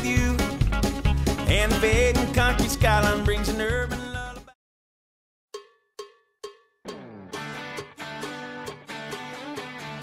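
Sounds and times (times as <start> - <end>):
guitar: 0.0 - 4.5, 6.9 - 10.0
ringing percussion strikes: 5.6 - 9.8.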